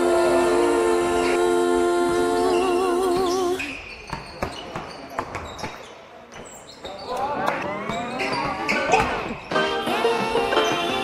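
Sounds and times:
background music: 0.0s - 3.4s, 9.5s - 11.0s.

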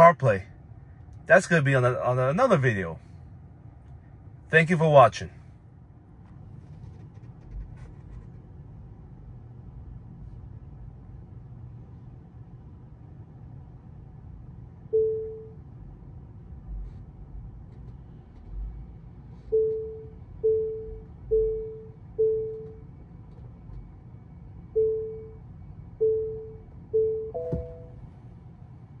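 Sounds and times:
warning beeps: 19.5s - 22.8s, 24.7s - 25.4s, 26.0s - 28.0s.

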